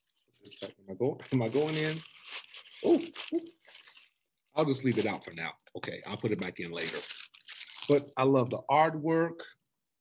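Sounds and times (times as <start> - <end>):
plastic record sleeve crinkling: 1.2 - 5.5, 6.3 - 8.1.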